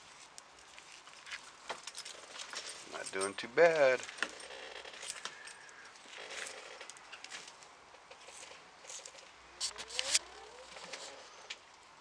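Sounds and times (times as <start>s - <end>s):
faint clicks and rustles: 0.0s - 11.9s.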